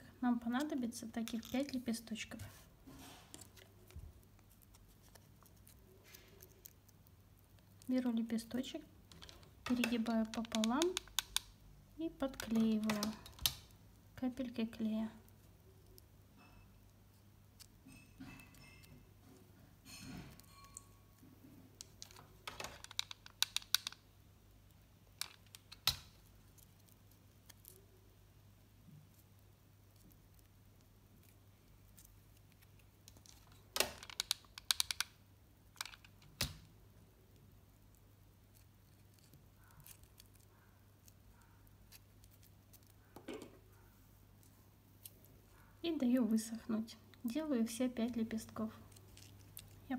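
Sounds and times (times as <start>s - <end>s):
small clicks and taps: 9.1s - 11.5s, 21.8s - 24.0s, 32.0s - 35.2s.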